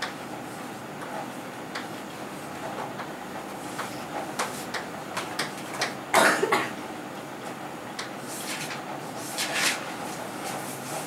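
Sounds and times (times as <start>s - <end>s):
person coughing: 6.1s - 6.8s
chalk scratching on chalkboard: 8.3s - 11.0s.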